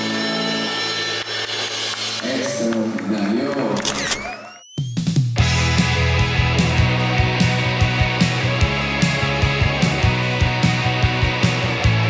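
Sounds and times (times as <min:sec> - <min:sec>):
rising whistle-like glide: 0:04.1 - 0:05.1.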